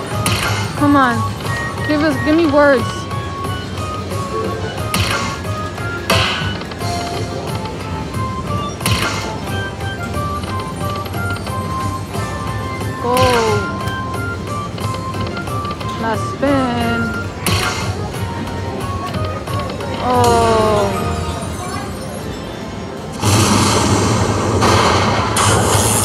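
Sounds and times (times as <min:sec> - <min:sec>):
slot machine sharp hits: 0:00.0 - 0:02.4, 0:04.0 - 0:11.2, 0:13.1 - 0:13.9, 0:17.3 - 0:18.2, 0:23.1 - 0:26.0.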